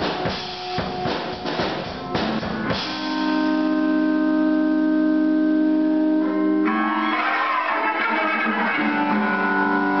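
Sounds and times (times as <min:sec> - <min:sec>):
guitar strumming: 0:00.0 - 0:10.0
electric guitar chord: 0:02.2 - 0:10.0.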